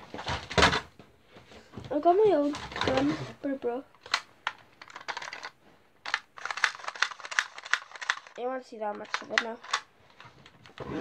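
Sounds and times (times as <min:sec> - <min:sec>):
plastic toy pistol clicking: 0:04.0 - 0:04.3, 0:06.1 - 0:08.4, 0:09.0 - 0:09.9.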